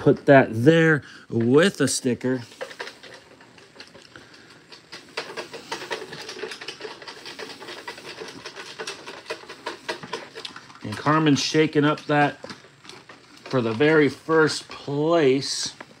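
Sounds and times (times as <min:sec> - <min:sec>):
paper slips rattling in plastic jar: 0:05.0 - 0:14.6.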